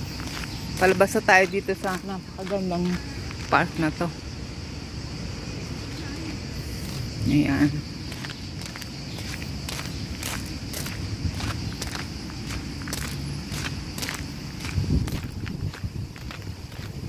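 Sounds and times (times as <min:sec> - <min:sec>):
footsteps on gravel: 0:00.0 - 0:04.1, 0:07.8 - 0:17.0.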